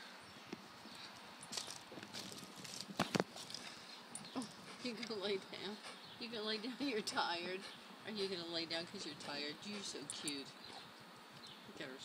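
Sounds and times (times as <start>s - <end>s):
dog panting: 4.5s - 10.9s.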